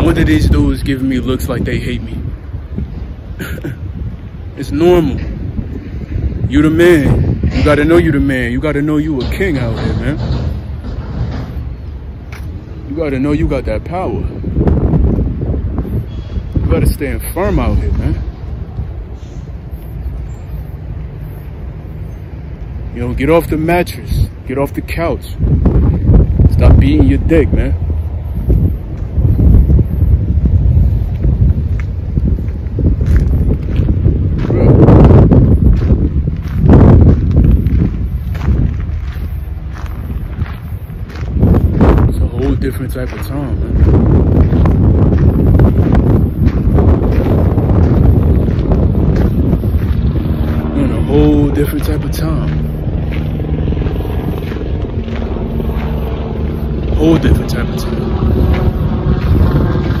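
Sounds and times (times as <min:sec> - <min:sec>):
wind buffeting microphone: 0:00.0 - 1:00.0.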